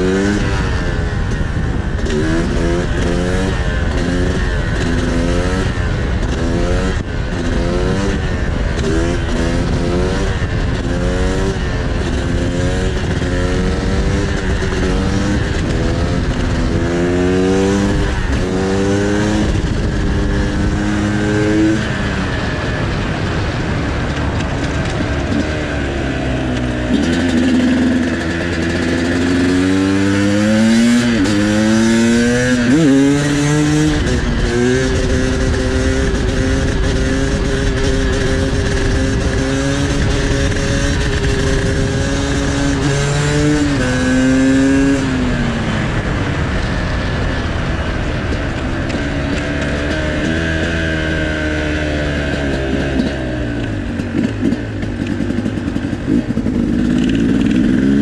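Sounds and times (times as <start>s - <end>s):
motorcycle engine accelerating: 0.0s - 58.0s
wind noise on microphone: 0.0s - 58.0s.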